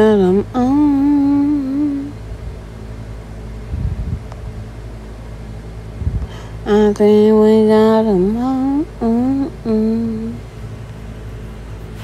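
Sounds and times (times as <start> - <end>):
steady low background hum: 0.0 - 12.0
brief low rumbles: 3.6 - 4.5, 5.9 - 6.6.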